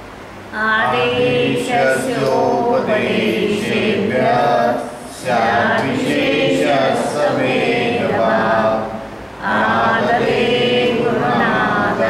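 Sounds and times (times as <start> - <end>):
voices chanting: 0.6 - 12.0.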